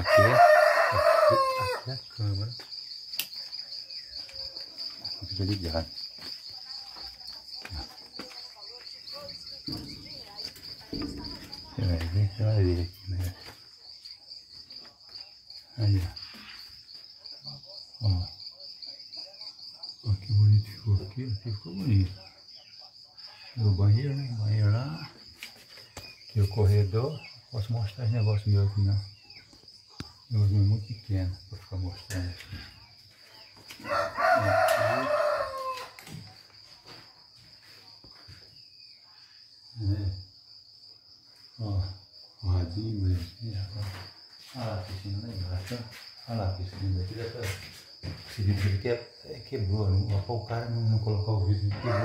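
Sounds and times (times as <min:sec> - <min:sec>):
rooster crowing: 0:00.0 - 0:02.1, 0:33.6 - 0:36.4, 0:51.7 - 0:52.0
crickets chirping: 0:00.0 - 0:52.0.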